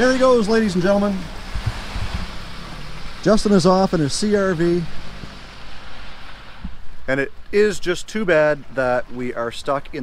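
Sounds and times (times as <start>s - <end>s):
car engine pulling away: 0.0s - 6.8s
rain on wet pavement: 0.0s - 9.2s.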